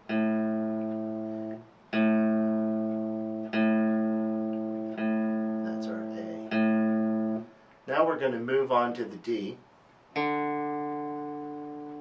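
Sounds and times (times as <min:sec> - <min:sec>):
electric guitar string ringing: 0:00.0 - 0:07.5, 0:10.2 - 0:12.0.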